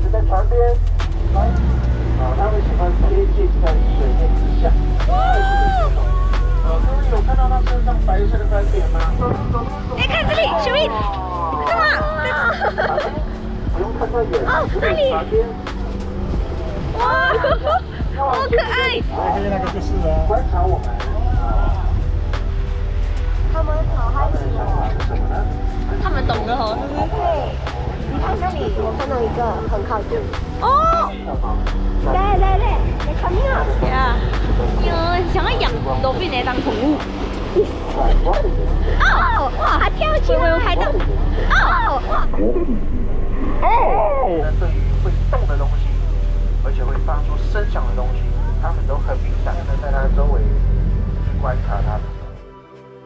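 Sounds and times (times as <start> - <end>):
background music with light beat: 0.0 - 42.3, 44.1 - 53.0
voices: 0.0 - 52.2
boat low rumble: 0.0 - 52.4.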